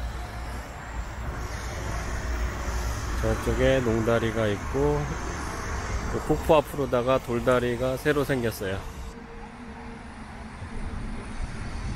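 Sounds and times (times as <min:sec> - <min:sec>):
outdoor hiss: 0:00.0 - 0:09.2
wind rumbling on microphone: 0:08.8 - 0:11.9.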